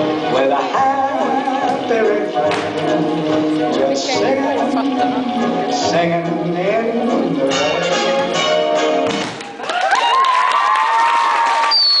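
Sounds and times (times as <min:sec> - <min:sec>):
clapping: 0:09.2 - 0:12.0
audience cheering and shouting: 0:09.4 - 0:12.0.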